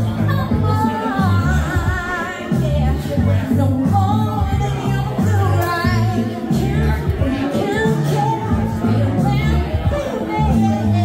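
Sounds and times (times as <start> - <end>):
backing music with bass line: 0.0 - 11.0
woman singing with vibrato: 0.0 - 11.0.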